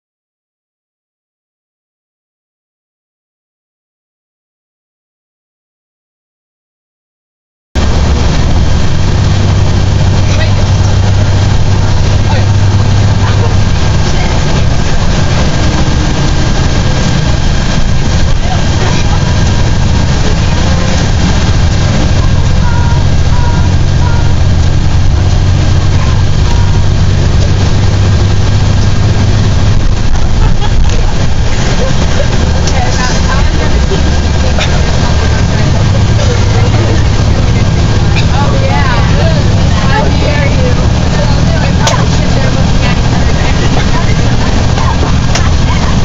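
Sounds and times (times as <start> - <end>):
bus engine and road noise: 7.8 - 46.0
faint passenger voices: 7.8 - 46.0.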